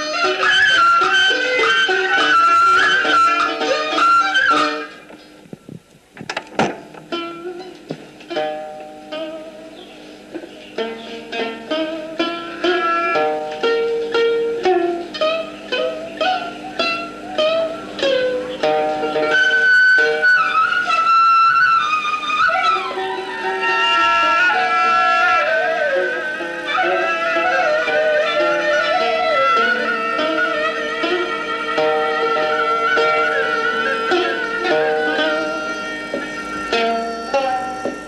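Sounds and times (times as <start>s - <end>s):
plucked-string melody: 0.0s - 38.0s.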